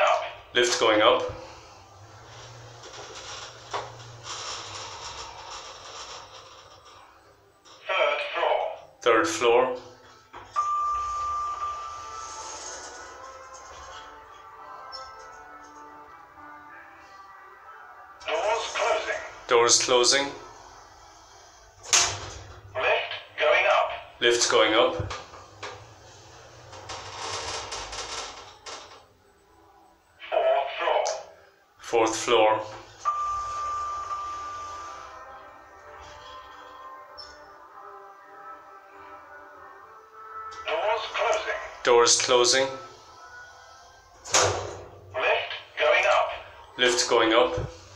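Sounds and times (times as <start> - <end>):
lift doors sliding open: 1.4 - 7.3, 10.4 - 14.3, 21.8 - 22.7, 24.9 - 29.1, 32.7 - 37.4, 44.1 - 45.1
lift arrival chime: 10.4 - 14.0, 32.9 - 36.2.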